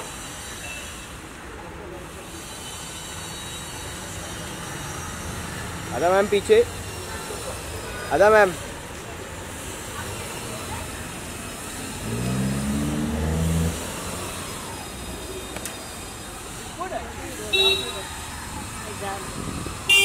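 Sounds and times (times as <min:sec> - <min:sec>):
street traffic: 0:00.0 - 0:20.0
vehicle engine: 0:08.6 - 0:20.0
car horn toot: 0:17.5 - 0:18.0.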